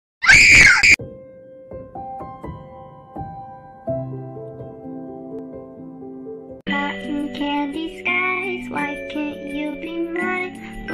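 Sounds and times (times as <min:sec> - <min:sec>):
high-pitched scream: 0:00.2 - 0:01.0
soft music with held notes: 0:01.0 - 0:10.9.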